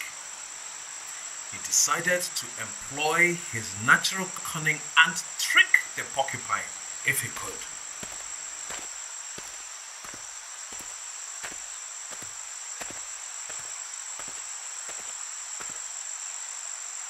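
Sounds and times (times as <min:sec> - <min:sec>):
crickets chirring: 0:00.0 - 0:17.0
soft footstep taps: 0:08.0 - 0:15.9.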